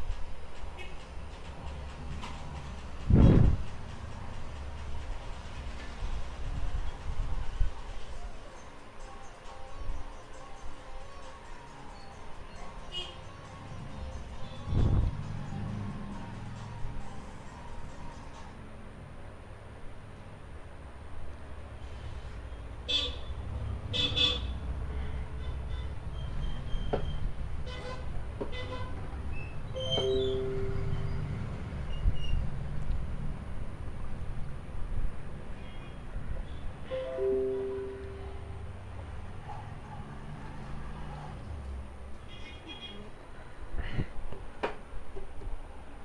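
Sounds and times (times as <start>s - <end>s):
low traffic rumble: 0.0s - 46.0s
vehicle horn toots: 22.9s - 24.6s, 27.6s - 29.0s.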